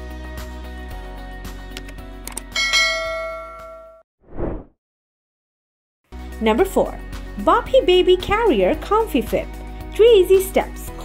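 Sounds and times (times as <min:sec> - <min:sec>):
bright bell ding: 0:02.6 - 0:04.0
faint background music: 0:06.2 - 0:11.0.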